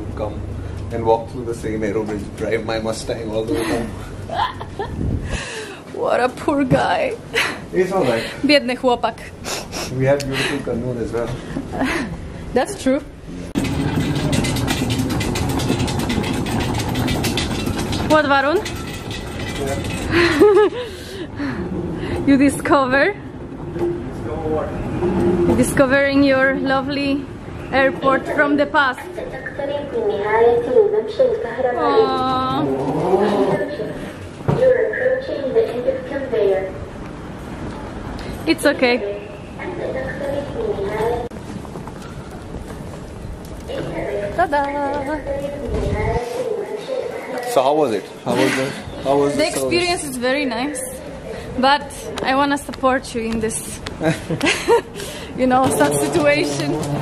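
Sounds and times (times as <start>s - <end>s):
moving walkway hum: 0.0s - 9.6s, 10.2s - 57.0s
moving walkway clicking: 12.8s - 20.8s, 39.8s - 46.3s, 52.0s - 57.0s.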